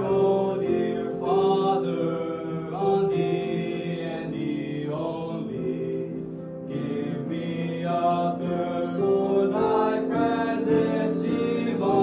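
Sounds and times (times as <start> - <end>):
young male voices singing: 0.0 - 12.0.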